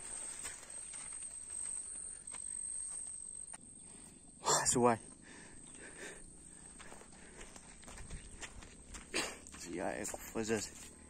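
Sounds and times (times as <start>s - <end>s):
faint footsteps: 0.0s - 4.2s, 5.1s - 11.0s.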